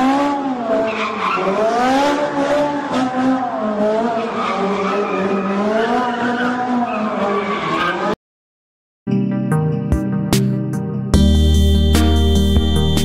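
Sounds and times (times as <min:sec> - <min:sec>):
car tyres squealing: 0:00.4 - 0:08.2.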